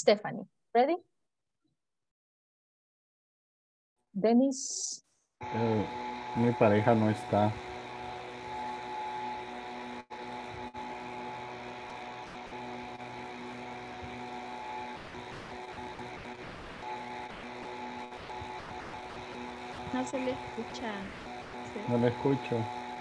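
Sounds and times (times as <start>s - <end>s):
electrical hum: 5.4s - 23.0s.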